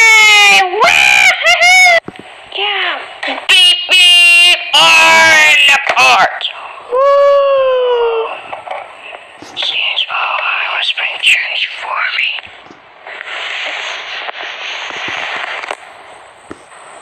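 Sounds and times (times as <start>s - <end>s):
high-pitched voice cheering: 6.9s - 8.4s.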